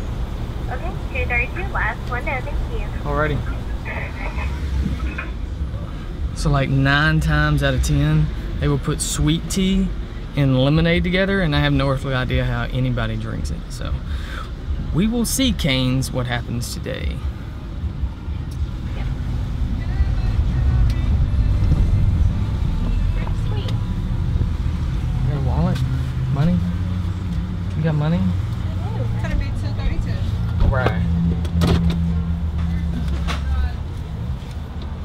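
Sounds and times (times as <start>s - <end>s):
low engine rumble inside car: 17.0s - 34.0s.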